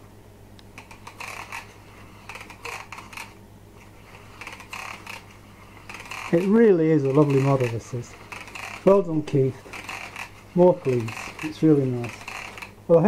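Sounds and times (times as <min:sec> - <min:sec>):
quick rasping clicks: 0:00.6 - 0:03.4, 0:04.1 - 0:12.8.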